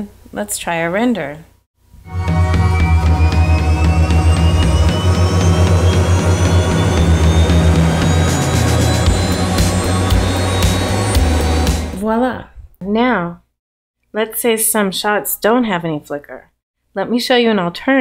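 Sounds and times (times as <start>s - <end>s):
high tone rising in pitch: 2.0s - 12.0s
pulsing bass line: 2.0s - 12.0s.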